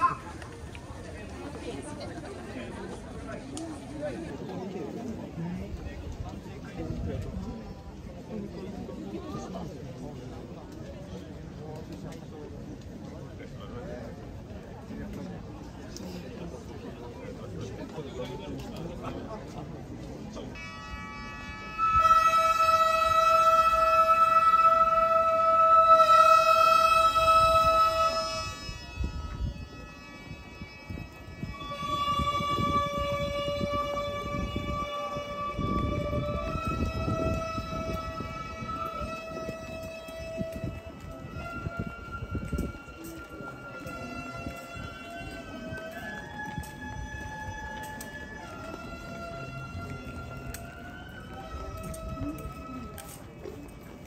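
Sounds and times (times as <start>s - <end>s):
wind instrument playing slow music: 0.0s - 0.8s, 20.0s - 54.0s
low street noise: 0.0s - 54.0s.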